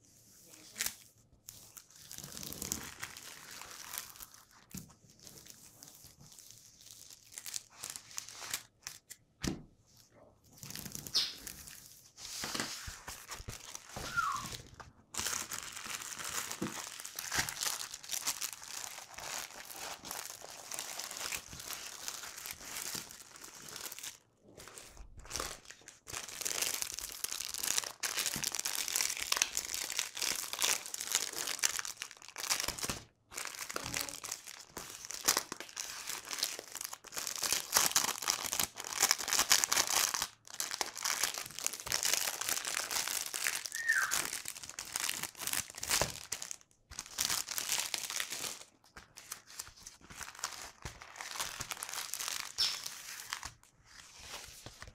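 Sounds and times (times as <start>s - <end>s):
plastic packaging crinkling: 0.5s - 9.2s, 10.6s - 54.9s.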